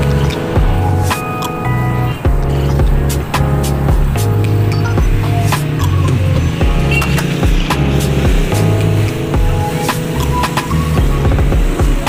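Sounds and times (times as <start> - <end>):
music with bass beat and percussion: 0.0 - 12.0.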